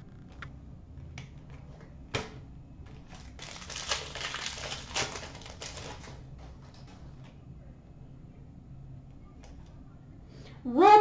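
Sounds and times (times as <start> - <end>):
cards rustling and crinkling: 2.9 - 7.3.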